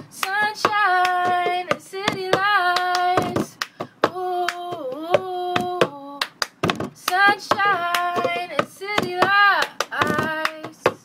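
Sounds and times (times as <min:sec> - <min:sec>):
hand claps: 0:00.2 - 0:04.8, 0:05.6 - 0:10.9.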